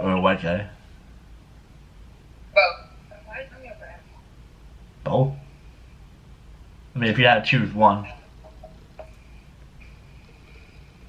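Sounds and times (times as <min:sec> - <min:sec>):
background hiss: 0:00.0 - 0:11.0
woman speaking over video call: 0:02.6 - 0:04.2.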